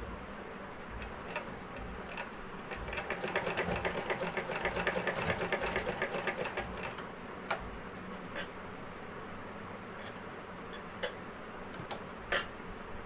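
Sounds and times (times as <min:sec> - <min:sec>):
sewing machine stitching: 0:01.0 - 0:07.1.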